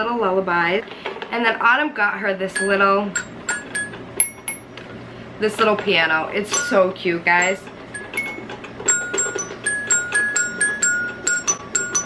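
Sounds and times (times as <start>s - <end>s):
toy xylophone plinks: 2.5s - 4.7s, 6.5s - 12.0s.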